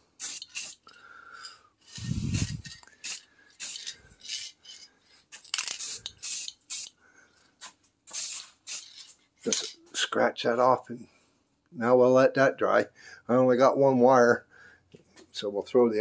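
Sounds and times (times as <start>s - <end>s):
aerosol can spraying: 0.2s - 0.8s, 2.0s - 4.5s, 5.6s - 7.0s, 8.1s - 9.1s.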